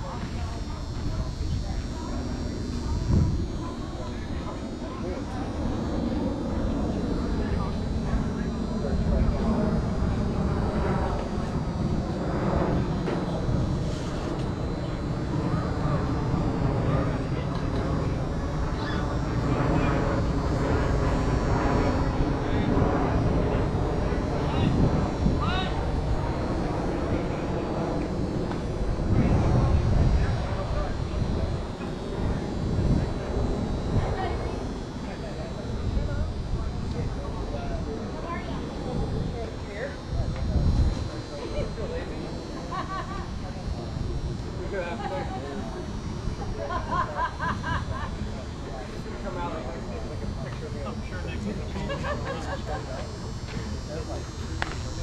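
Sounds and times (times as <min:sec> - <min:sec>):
airplane flying overhead: 0:00.0 - 0:55.0.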